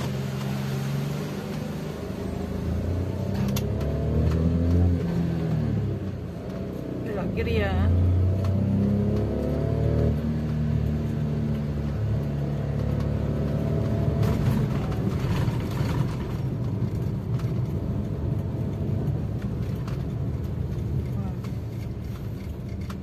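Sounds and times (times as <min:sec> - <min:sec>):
car engine hum: 0:00.0 - 0:23.0.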